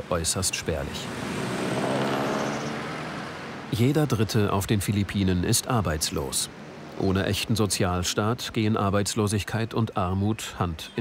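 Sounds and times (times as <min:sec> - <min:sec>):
vehicle engine passing close: 0:00.9 - 0:03.7.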